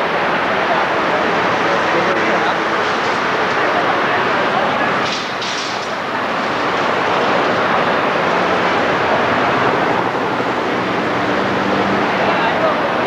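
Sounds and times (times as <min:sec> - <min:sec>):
vehicle traffic noise: 0:00.0 - 0:13.0.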